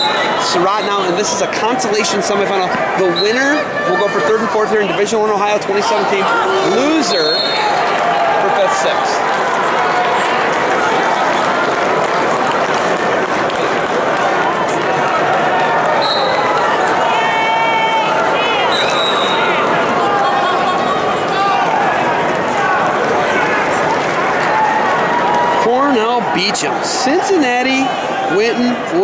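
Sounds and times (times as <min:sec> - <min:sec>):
crowd voices talking: 0:00.0 - 0:29.0
high whistle-like tones: 0:07.0 - 0:07.7, 0:16.0 - 0:16.5, 0:18.7 - 0:19.6.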